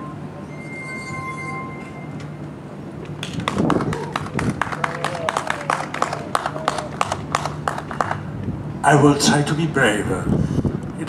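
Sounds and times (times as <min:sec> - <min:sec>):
glass harp notes: 0:00.0 - 0:02.4.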